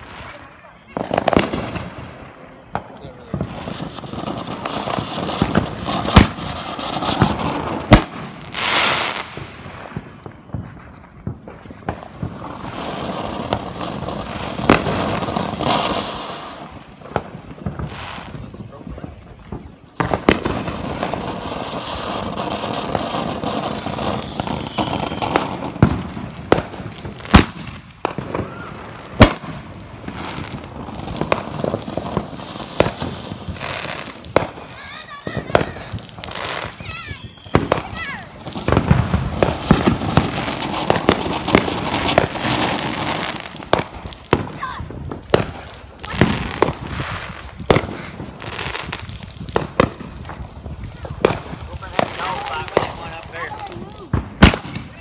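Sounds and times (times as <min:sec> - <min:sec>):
fireworks bangs: 0:00.0 - 0:55.0
fireworks fountains hissing and crackling: 0:00.0 - 0:55.0.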